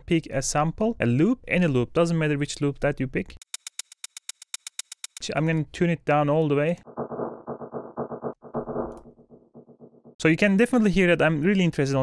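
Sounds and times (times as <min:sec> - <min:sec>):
muffled rhythmic pulsing: 0:06.9 - 0:10.2.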